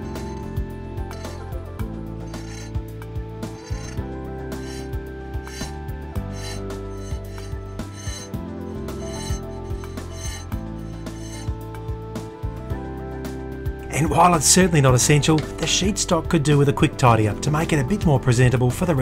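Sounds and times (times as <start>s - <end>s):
hand file rasping on brass: 0.0s - 11.8s
soft background music: 0.0s - 19.0s.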